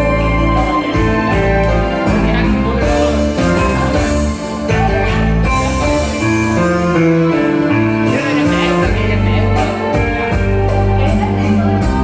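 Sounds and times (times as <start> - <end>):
instrumental backing track with guitar: 0.0 - 12.0.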